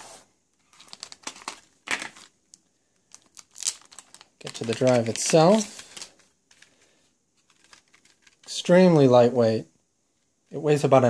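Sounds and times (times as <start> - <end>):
plastic packaging crinkling: 0.6 - 8.6.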